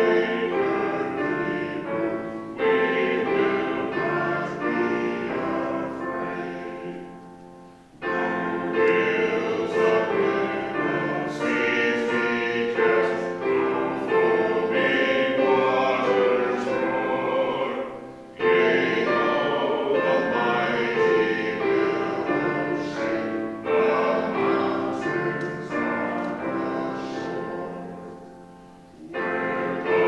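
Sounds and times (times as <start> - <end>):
group singing a hymn: 0.0 - 30.0.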